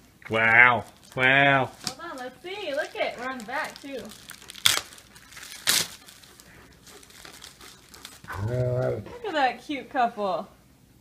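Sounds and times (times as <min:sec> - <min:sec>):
faint paper crinkling: 0:00.4 - 0:09.4
paper rustling: 0:00.8 - 0:08.9.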